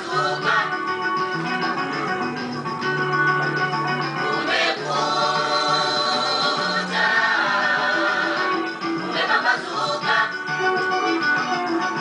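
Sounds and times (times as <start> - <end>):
choir singing in harmony: 0.0 - 1.0, 4.2 - 10.7.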